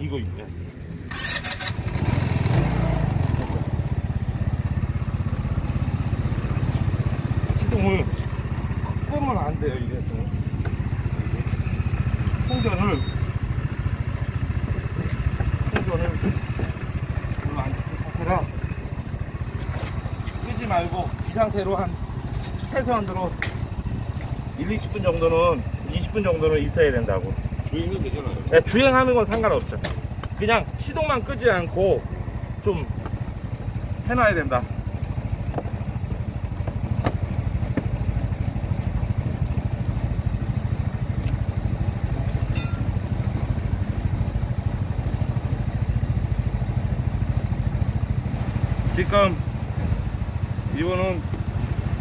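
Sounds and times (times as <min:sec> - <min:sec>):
scooter engine idling: 0:00.0 - 0:52.0.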